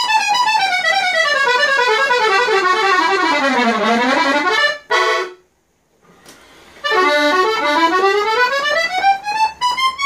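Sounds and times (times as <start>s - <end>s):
accordion playing descending run: 0.0s - 5.4s, 6.2s - 10.0s.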